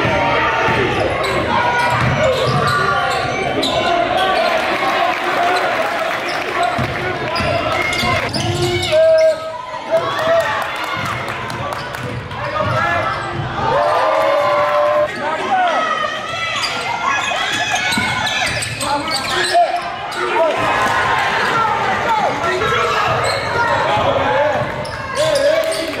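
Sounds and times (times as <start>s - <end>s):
players and spectators voices: 0.0s - 26.0s.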